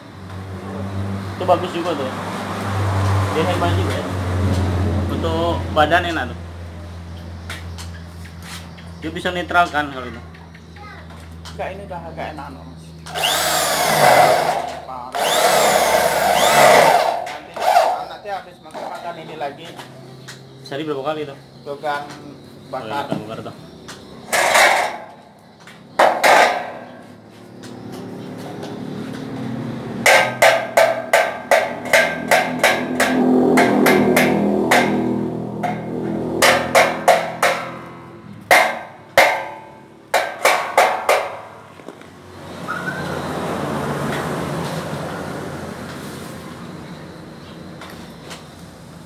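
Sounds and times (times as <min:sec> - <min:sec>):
hammer striking metal: 0:26.0 - 0:27.0, 0:30.0 - 0:41.6.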